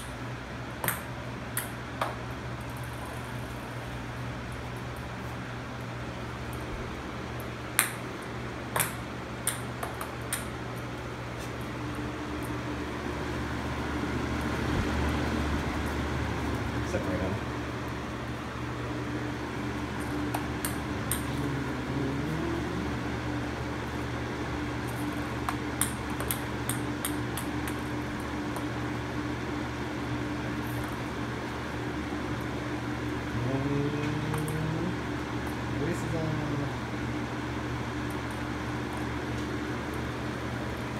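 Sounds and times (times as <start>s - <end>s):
balls ticking against fan grille: 0.0s - 40.9s
floor fan humming: 0.0s - 40.9s.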